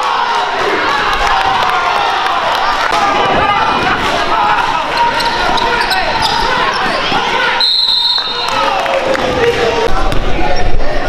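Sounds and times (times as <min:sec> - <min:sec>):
voices echoing in a hall: 0:00.0 - 0:11.0
referee's whistle: 0:07.6 - 0:08.7.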